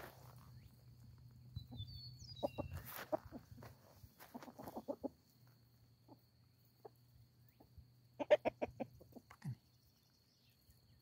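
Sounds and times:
chickens clucking: 1.6s - 9.6s.

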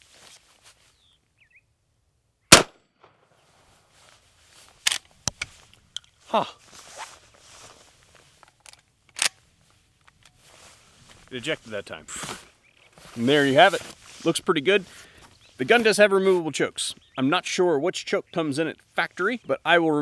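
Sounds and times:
loud shotgun shot: 2.5s - 3.1s.

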